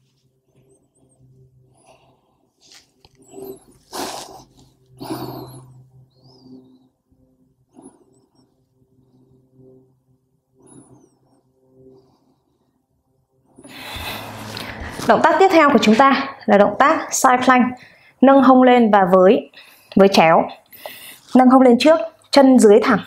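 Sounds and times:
low steady hum: 0.0s - 23.0s
woman breathing out: 13.6s - 15.0s.

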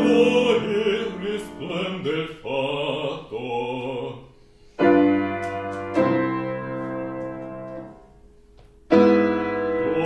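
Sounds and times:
grand piano chords: 0.0s - 10.0s.

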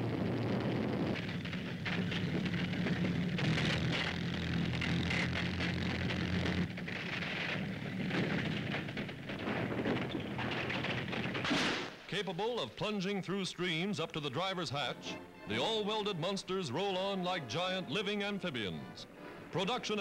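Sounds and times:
tank engine drone: 0.0s - 11.5s
rough crackling rushing noise: 0.0s - 12.6s.

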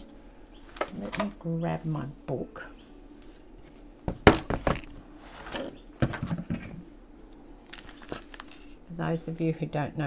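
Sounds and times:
thick paper journal thumping on desk: 4.2s - 4.8s
paper rustling: 7.7s - 8.8s.

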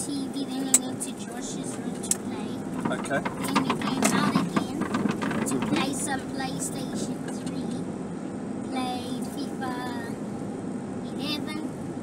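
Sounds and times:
child talking: 0.0s - 2.6s, 3.4s - 7.8s, 8.7s - 10.2s, 11.1s - 11.7s
car running with road noise: 0.0s - 12.0s.

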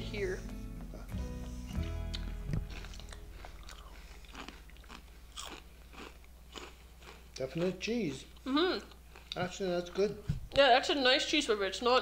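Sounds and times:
music: 0.0s - 3.4s
crunching and chewing snack: 1.8s - 8.2s.

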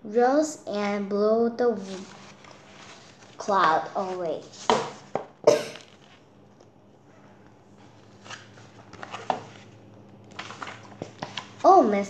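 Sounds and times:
paper pages rustling: 1.8s - 4.9s, 7.8s - 11.9s.

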